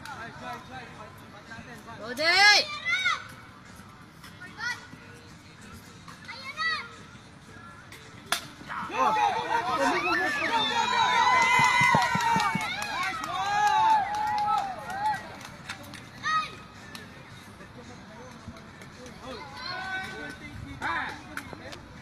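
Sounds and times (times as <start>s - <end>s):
crowd shouting and cheering: 8.6s - 15.4s.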